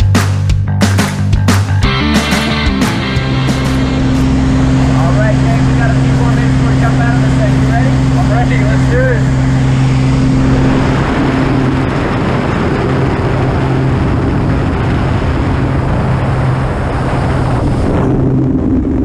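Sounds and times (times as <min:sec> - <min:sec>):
small plane engine droning: 0:01.8 - 0:19.0
wind rushing through open door: 0:09.2 - 0:19.0.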